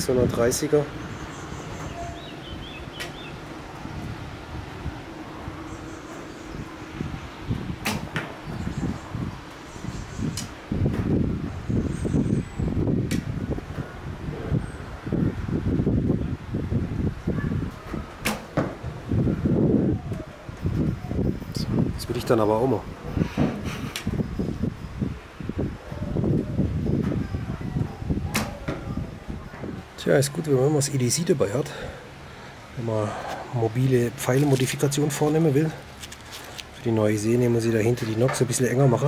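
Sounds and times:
outdoor background hiss: 0:00.0 - 0:39.0.

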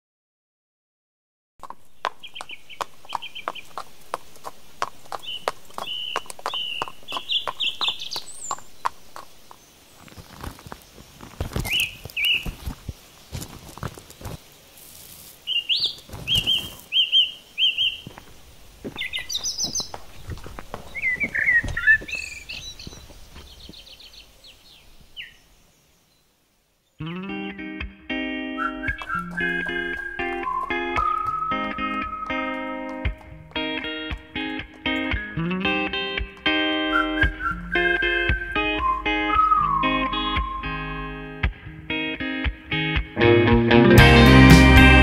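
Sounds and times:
horse hooves clopping on pavement: 0:01.6 - 0:14.4, 0:17.9 - 0:24.2, 0:28.8 - 0:38.6
small birds chirping: 0:01.6 - 0:27.2, 0:28.6 - 0:40.8.

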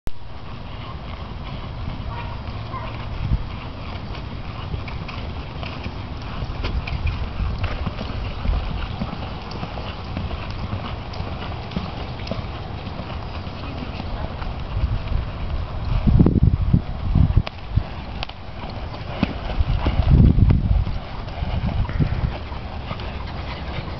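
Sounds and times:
horse hoofbeats on dirt: 0:00.3 - 0:23.9.

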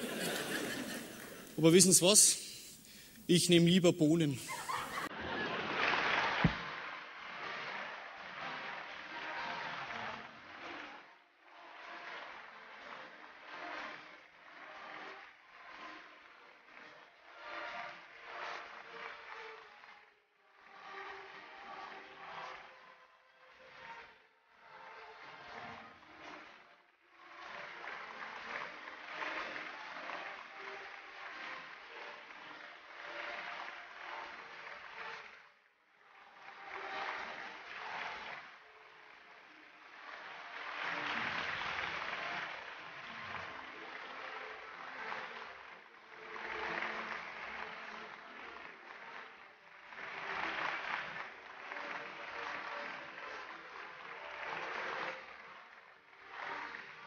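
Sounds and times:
music playing: 0:00.0 - 0:05.1
audience applauding: 0:00.0 - 0:10.9, 0:27.4 - 0:35.4, 0:36.3 - 0:57.0.

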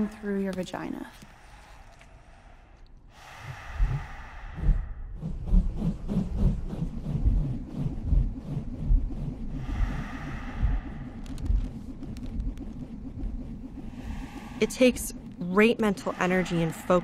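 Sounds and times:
low deep pulsing rumble: 0:03.4 - 0:17.0.

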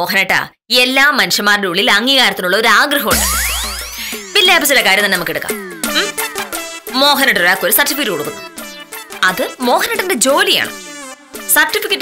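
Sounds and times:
woman speaking animatedly: 0:00.0 - 0:03.3, 0:04.1 - 0:06.2, 0:06.9 - 0:08.4, 0:09.2 - 0:10.8, 0:11.5 - 0:12.0
brief high buzzing: 0:03.1 - 0:06.8.

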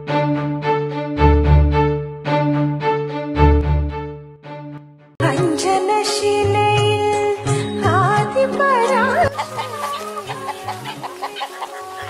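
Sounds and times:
background music: 0:00.0 - 0:12.0
rooster clucking: 0:08.8 - 0:12.0.

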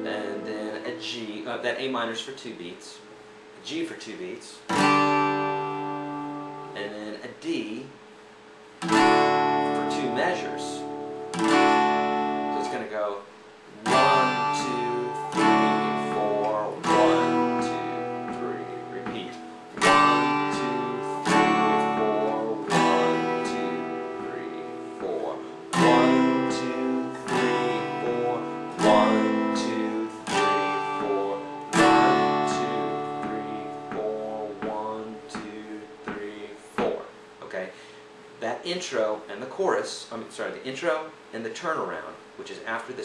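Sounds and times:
acoustic guitar strumming: 0:00.0 - 0:02.2, 0:04.1 - 0:07.7, 0:08.7 - 0:38.0.

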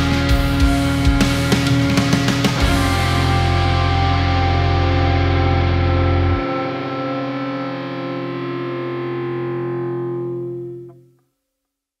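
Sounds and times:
metal band playing: 0:00.0 - 0:10.9
distorted guitar chord ringing: 0:00.0 - 0:11.2.

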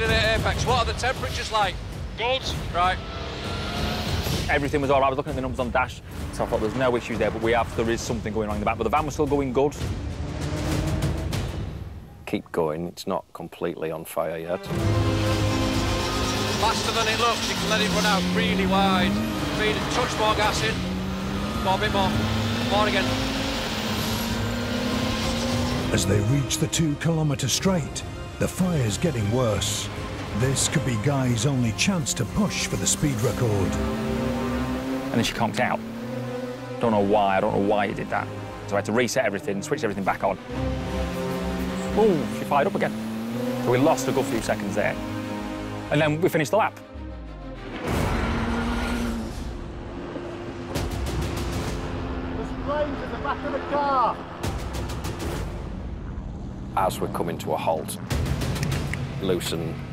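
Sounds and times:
exhaust crackles: 0:14.5 - 0:45.9
van engine at full throttle: 0:14.7 - 0:27.2, 0:28.6 - 0:45.9.

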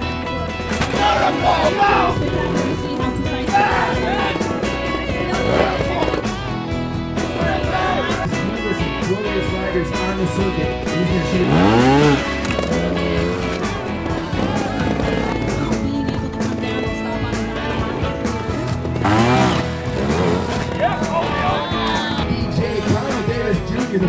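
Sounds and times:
motorcycle engine revving: 0:00.0 - 0:23.4
guitar background music: 0:00.0 - 0:24.0.

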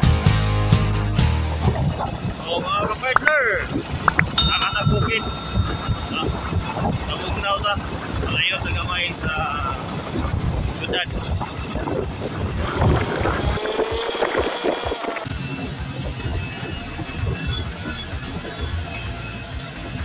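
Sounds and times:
wind noise on microphone: 0:01.2 - 0:20.0.

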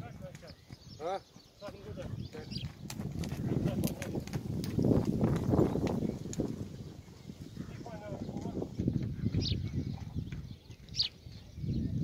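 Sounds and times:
hoofbeats on sand: 0:00.0 - 0:12.0.

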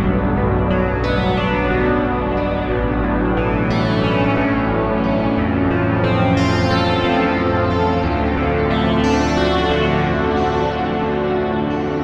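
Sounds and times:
synthesizer chords: 0:00.0 - 0:12.0.

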